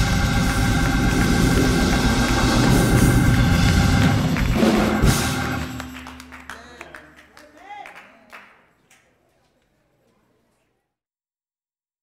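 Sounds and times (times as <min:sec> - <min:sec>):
drum kit with cymbals: 0:00.0 - 0:06.0
held keyboard chord: 0:00.0 - 0:06.5
live band playing: 0:00.0 - 0:07.0.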